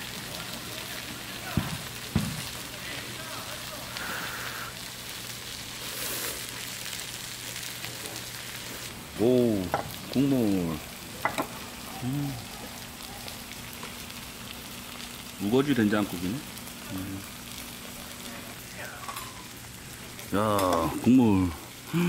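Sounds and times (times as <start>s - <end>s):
meat sizzling on a griddle: 0.0s - 22.0s
person's voice: 20.3s - 22.0s.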